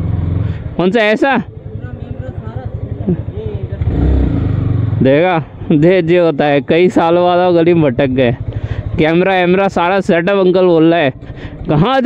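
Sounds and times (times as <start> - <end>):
motorcycle engine pulling away: 0.0 - 0.6, 1.5 - 5.2.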